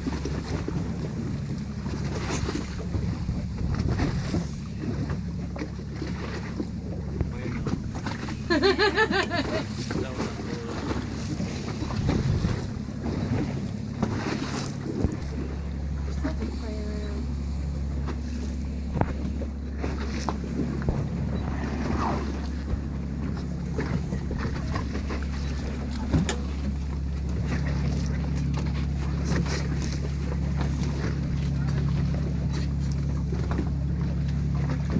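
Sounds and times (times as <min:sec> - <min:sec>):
boat engine humming: 0:00.0 - 0:34.9.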